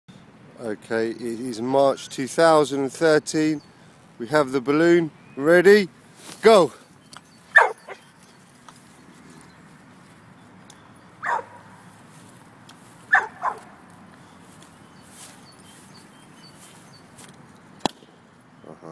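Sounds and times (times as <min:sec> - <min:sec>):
dog barking: 0:07.5 - 0:08.0, 0:11.2 - 0:11.7, 0:13.1 - 0:13.7.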